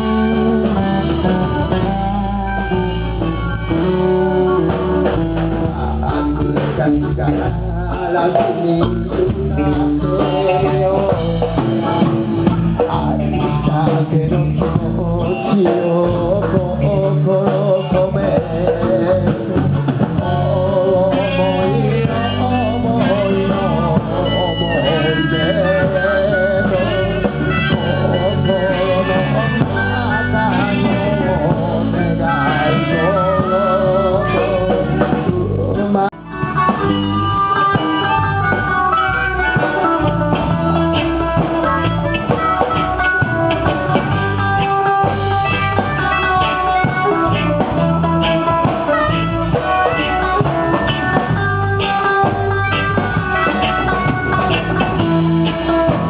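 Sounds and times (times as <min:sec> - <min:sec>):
live rock band playing: 0:00.0 - 0:56.0
person singing wavering vocal: 0:20.2 - 0:36.2.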